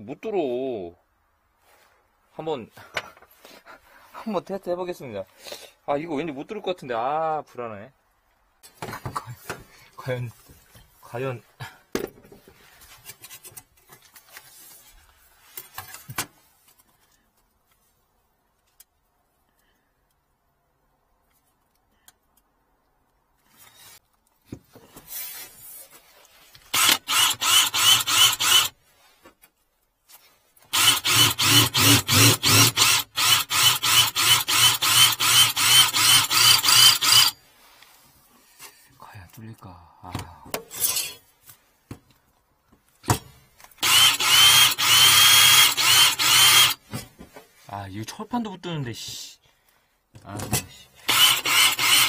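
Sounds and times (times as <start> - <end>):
drill hole saw cutting steel: 26.7 - 28.7, 30.7 - 37.4, 43.8 - 46.8, 51.0 - 52.0.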